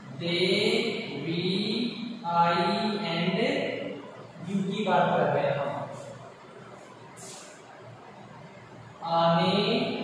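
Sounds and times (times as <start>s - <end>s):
man speaking: 0.0s - 6.2s.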